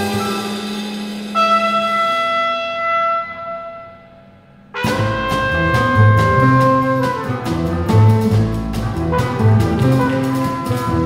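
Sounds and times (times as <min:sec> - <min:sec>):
trumpet and saxophone sustained note: 0:00.0 - 0:11.0
low held bass tone: 0:01.4 - 0:11.0.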